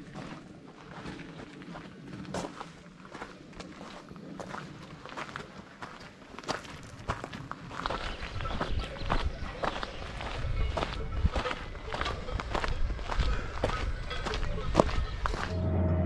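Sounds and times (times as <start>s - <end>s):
footsteps on gravel: 0.0s - 15.6s
low rumble: 15.5s - 16.0s.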